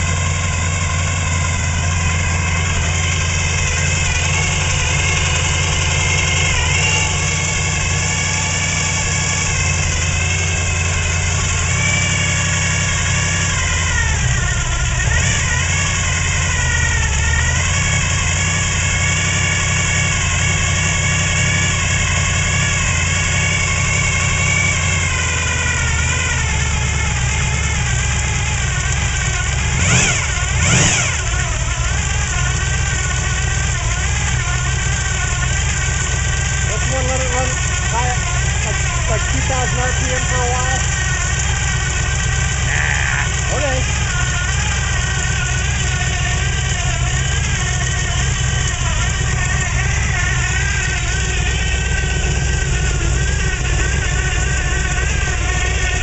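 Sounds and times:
car engine idling: 0.0 - 56.0
engine throttle blips: 0.0 - 56.0.

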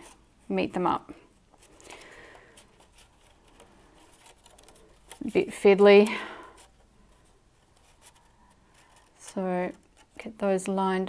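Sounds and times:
punch card rustling: 1.4 - 10.6.

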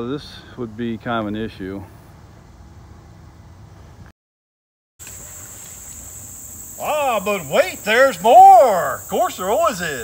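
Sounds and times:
insects chirring: 5.0 - 10.0
man speaking: 6.8 - 10.0.

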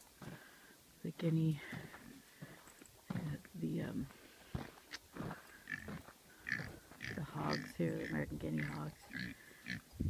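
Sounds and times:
hogs grunting: 5.3 - 9.9.

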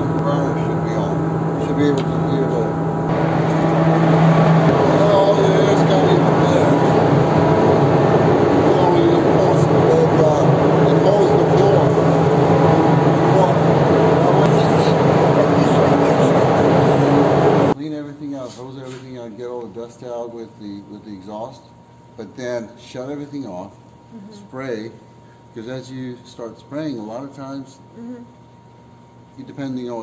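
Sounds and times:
exhaust fan rushing air: 0.0 - 30.0.

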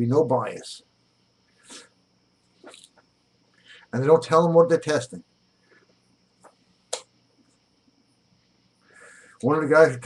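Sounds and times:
man sniffing breath: 1.6 - 2.0, 8.8 - 9.4.

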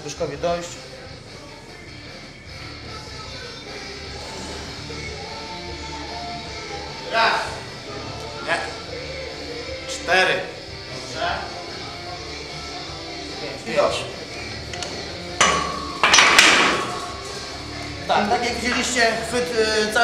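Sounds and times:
background music: 0.0 - 20.0
loaded bar clattering on floor: 15.4 - 17.0.

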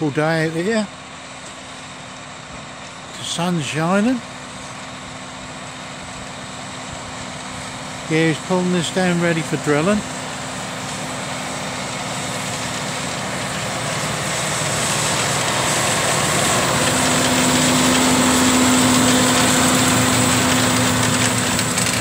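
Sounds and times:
tractor diesel engine under load: 0.0 - 22.0.

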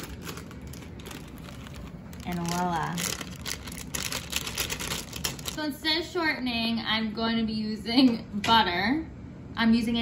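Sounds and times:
plastic bag crinkling: 0.0 - 5.9.

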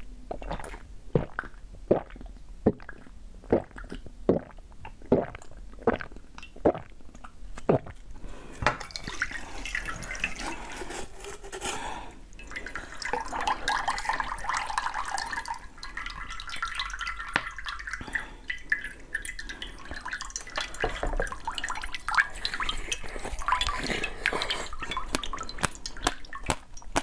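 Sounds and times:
fruit pulp pouring and dripping: 0.3 - 27.0.

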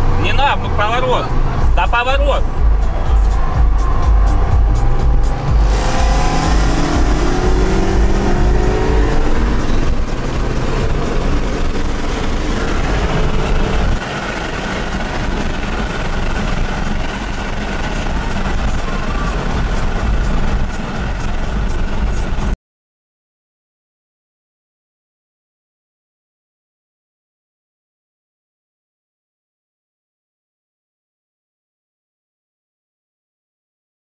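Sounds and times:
car engine accelerating: 0.0 - 22.6
road noise: 0.0 - 22.6.

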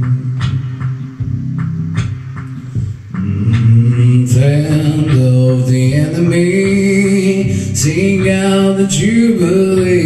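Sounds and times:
man singing low held notes: 3.1 - 10.0.

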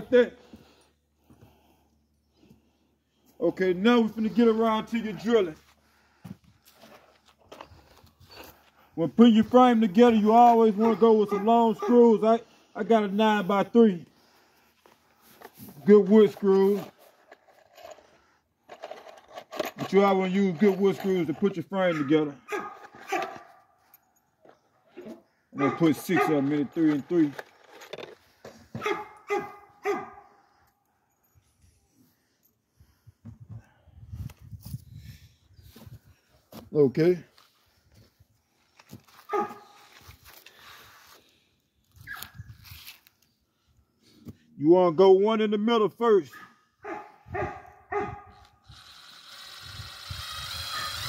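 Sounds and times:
scraping and rustling handling noises: 3.8 - 8.8, 14.7 - 29.2, 37.3 - 43.3
man's voice: 9.0 - 14.1
dog barking: 10.8 - 12.0, 21.9 - 23.6, 25.6 - 26.4, 28.8 - 30.4, 39.3 - 39.8, 46.3 - 48.4
dog yelping: 10.8 - 12.0, 22.0 - 23.6, 25.6 - 26.3, 28.8 - 30.2, 39.3 - 39.7, 50.7 - 51.0.

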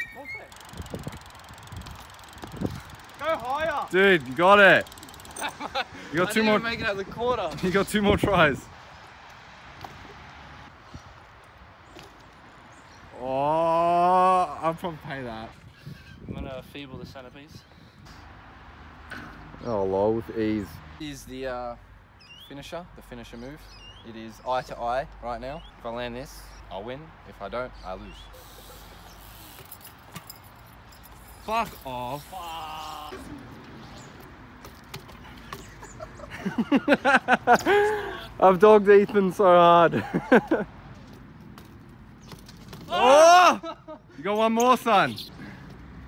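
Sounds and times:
bike clicks and rattles: 0.0 - 6.4, 29.0 - 32.3, 32.9 - 38.0, 40.0 - 43.2
bike rolling on concrete: 0.0 - 15.6, 27.3 - 43.6, 44.8 - 46.0
outdoor background noise: 0.0 - 46.0.

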